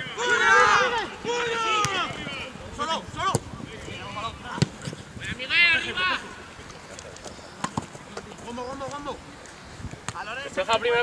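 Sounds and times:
man shouting: 0.0s - 2.2s.

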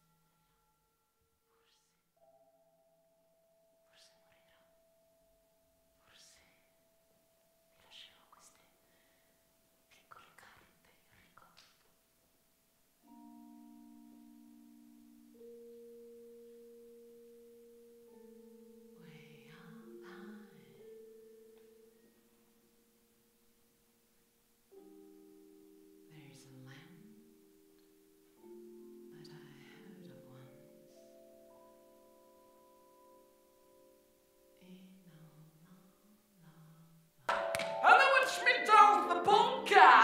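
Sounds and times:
faint vibraphone notes: 13.0s - 24.0s, 24.8s - 40.0s
voice: 19.0s - 20.8s, 37.8s - 40.0s
sharp knock: 37.3s - 37.8s
ringing mallet instrument tones: 37.3s - 40.0s.

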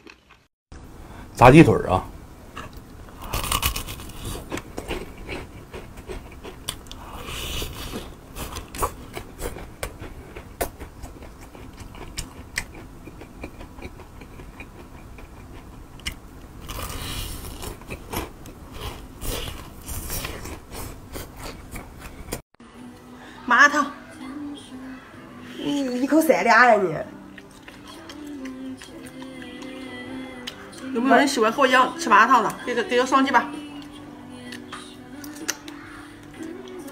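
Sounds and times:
crunching and chewing fried chicken: 0.0s - 0.5s, 2.6s - 22.4s, 27.3s - 30.8s.

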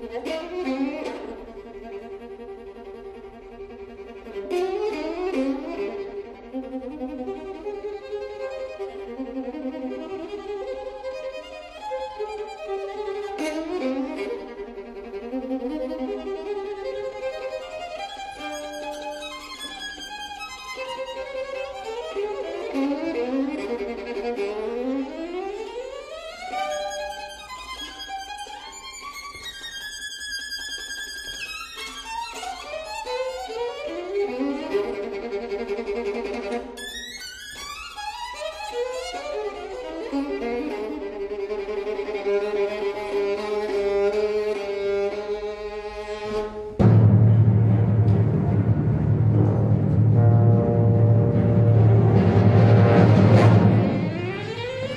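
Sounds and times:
solo violin playing: 0.0s - 46.8s, 53.7s - 54.9s
orchestra playing: 46.3s - 54.9s.

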